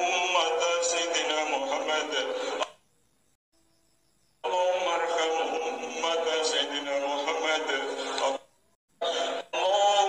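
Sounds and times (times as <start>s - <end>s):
person chanting a prayer: 4.4s - 8.4s.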